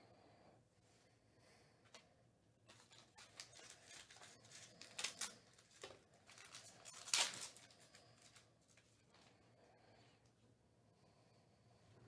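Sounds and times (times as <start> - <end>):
cards rustling: 2.7 - 8.9
wrapper crinkling: 2.7 - 8.9.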